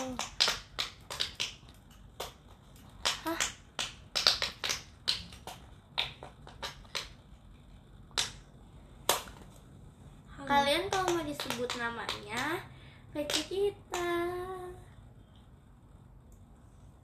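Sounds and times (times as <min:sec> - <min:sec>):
sharp clicks and taps: 0:10.8 - 0:12.5.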